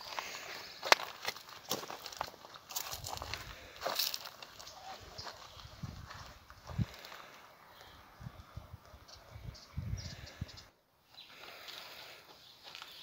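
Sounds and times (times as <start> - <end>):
footsteps on dirt and stone: 0.0 - 7.9, 11.3 - 13.0.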